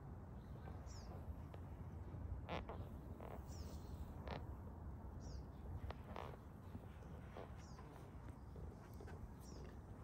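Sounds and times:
small bird chirping: 0.4s - 1.6s, 2.5s - 4.4s, 5.1s - 8.4s
massage table creaking: 2.3s - 3.6s, 5.8s - 8.3s.

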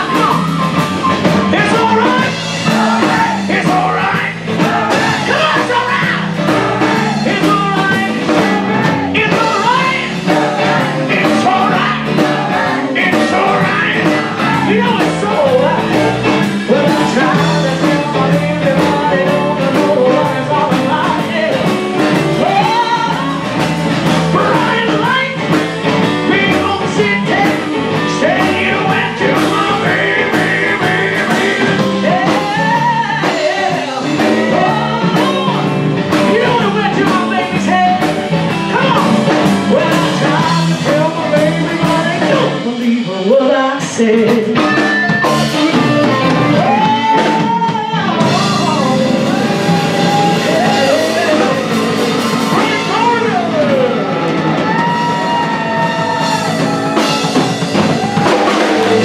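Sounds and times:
live blues band playing: 0.0s - 59.0s
woman singing: 16.7s - 23.6s, 26.3s - 38.1s.

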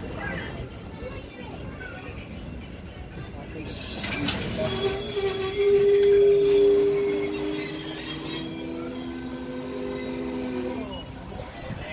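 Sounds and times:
train wheels squealing on rails: 3.6s - 11.9s.

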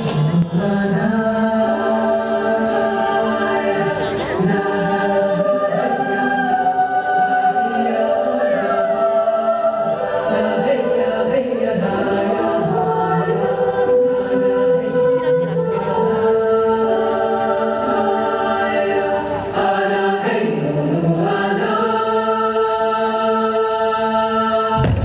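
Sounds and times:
choir holding sustained chords: 0.0s - 25.0s.

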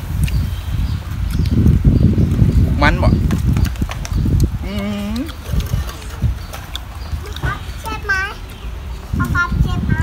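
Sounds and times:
man chewing crunchy fruit: 0.0s - 9.0s
mouth clicks and knocks: 3.2s - 8.0s.

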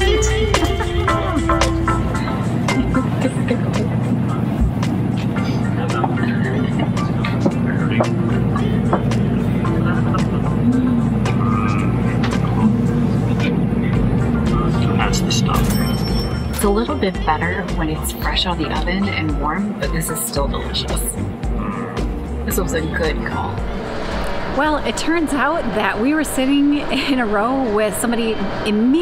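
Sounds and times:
background music: 0.0s - 24.6s
train cabin rumble: 0.0s - 29.0s.

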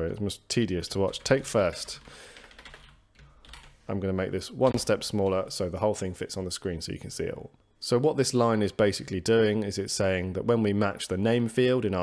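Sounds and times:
computer keyboard keystrokes: 2.0s - 3.7s.

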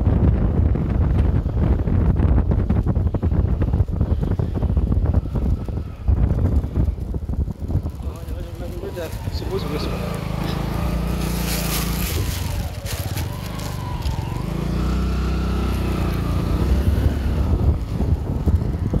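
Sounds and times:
motorcycle engine running: 1.9s - 19.0s.

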